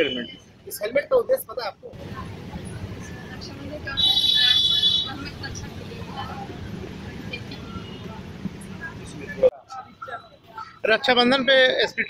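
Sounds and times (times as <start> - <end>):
low rumble of traffic: 0.0 - 12.0
faint voices murmuring: 1.8 - 12.0.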